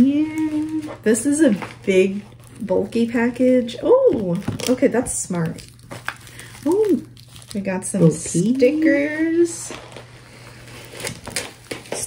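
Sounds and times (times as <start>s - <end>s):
packaging clicks and rustles: 0.0s - 12.0s.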